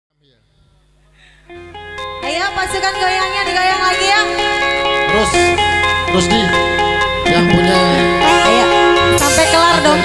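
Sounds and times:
live band music with guitar: 1.5 - 10.0
low bass: 1.5 - 10.0.

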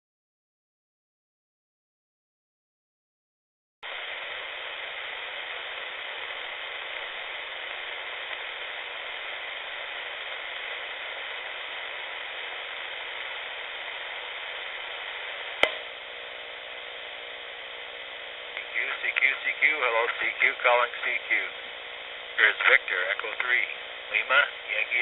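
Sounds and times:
radio static hiss: 3.8 - 25.0
steady radio tones: 3.9 - 25.0
sharp click: 15.6 - 15.9.

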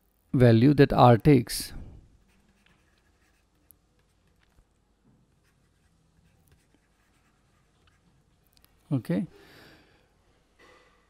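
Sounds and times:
stylus scratching on tablet: 2.2 - 4.7, 5.3 - 8.5.

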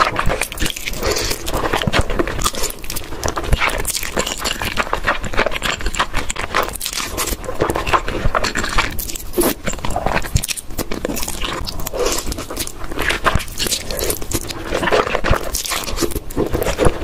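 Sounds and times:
loud slurping and chewing noodles: 0.0 - 17.0.

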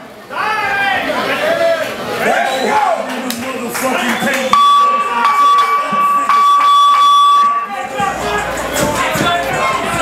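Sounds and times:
crowd voices: 0.0 - 10.0
electronic buzzer high tone: 4.5 - 7.8.

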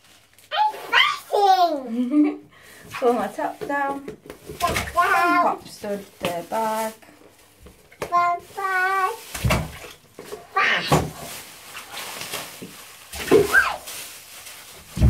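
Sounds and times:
plastic bag rustling: 0.0 - 2.3, 2.9 - 15.0
child calling out: 10.6 - 11.0.

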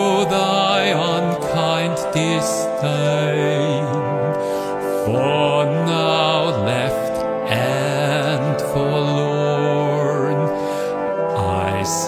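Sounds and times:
harmonium chords: 0.0 - 12.0
man singing a long note: 0.0 - 12.0.

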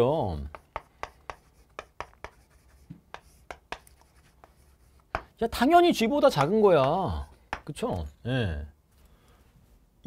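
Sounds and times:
chalk tapping on chalkboard: 0.3 - 5.4, 6.0 - 8.0.

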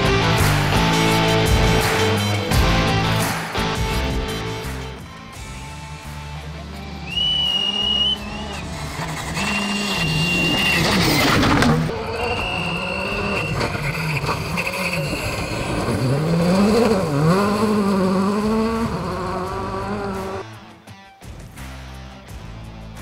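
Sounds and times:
rally car engine revving: 5.7 - 20.6.

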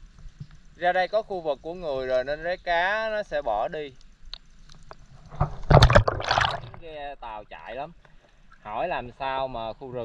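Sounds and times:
water splashing and sloshing: 4.6 - 7.0.

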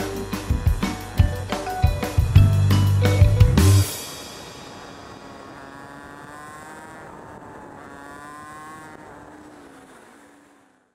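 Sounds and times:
motorcycle engine running: 0.0 - 10.9
road and wind noise: 0.0 - 10.9.

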